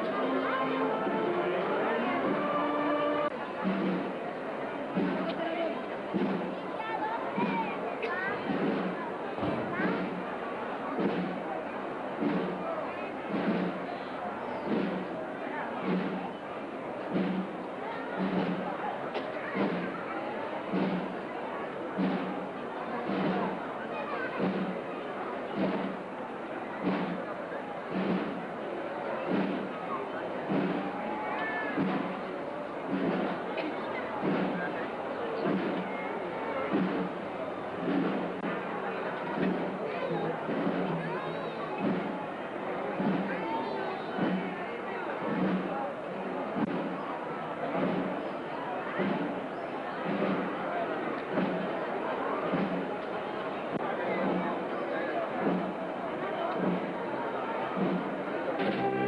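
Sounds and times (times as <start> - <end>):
procession drum beating: 0.0 - 59.0
street crowd chatter: 0.0 - 59.0.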